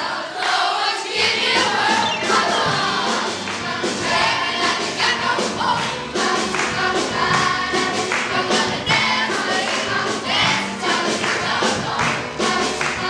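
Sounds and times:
children's choir singing: 0.0 - 13.0
musical accompaniment with beat: 1.1 - 13.0.

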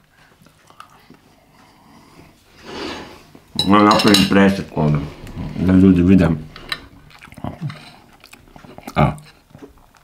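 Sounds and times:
person chewing food: 0.0 - 2.6, 6.4 - 10.0.

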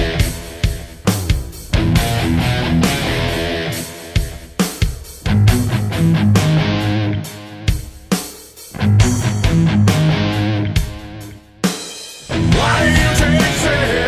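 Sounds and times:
distorted electric guitar: 0.0 - 4.6, 5.2 - 7.7, 8.8 - 11.2, 12.3 - 14.0
drum kit playing: 0.0 - 6.8.

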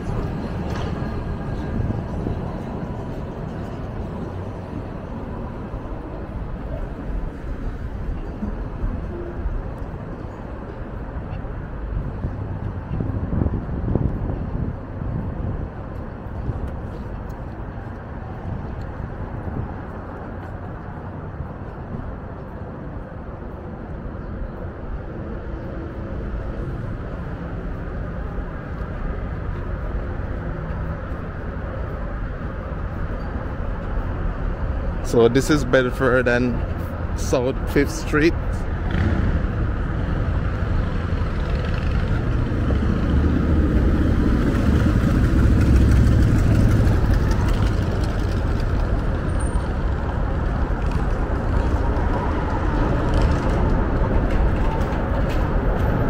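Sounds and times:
passing vehicles rumbling: 0.0 - 56.0.

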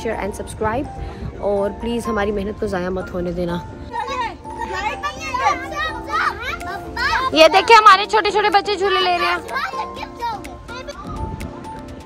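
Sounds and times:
children calling out excitedly: 3.9 - 11.6.

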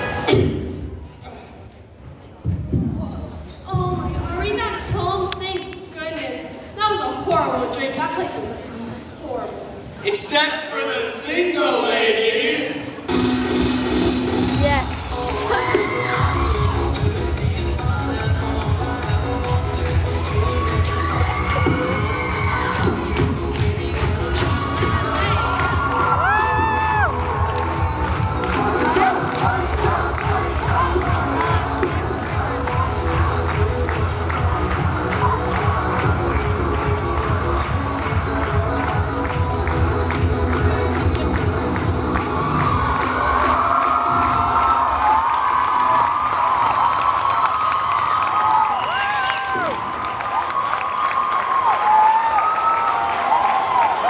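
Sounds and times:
loud music with steady beat: 0.0 - 0.9, 13.0 - 45.3
crowd cheering and screaming: 14.6 - 17.2, 19.9 - 23.4, 24.0 - 33.4, 42.0 - 54.0.

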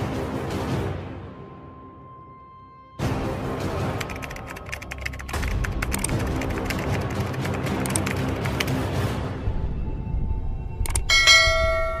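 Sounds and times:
low background music: 0.0 - 12.0
bell-like chime: 11.1 - 12.0.

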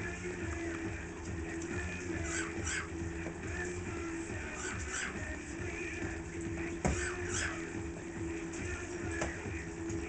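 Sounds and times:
parakeet squawks: 1.9 - 3.1, 4.3 - 5.5, 6.8 - 7.8.

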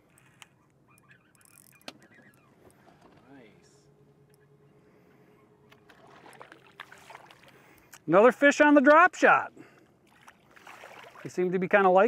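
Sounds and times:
fishing reel clicks: 1.3 - 1.9.

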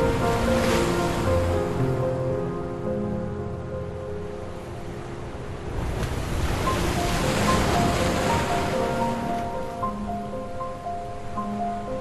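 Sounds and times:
sea wave washing in: 0.0 - 1.9, 5.6 - 9.9
soft slow instrumental music: 0.0 - 12.0.

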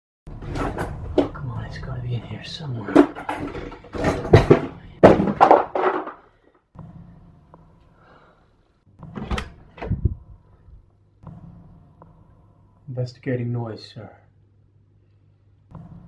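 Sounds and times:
sharp thuds: 11.2 - 12.3.

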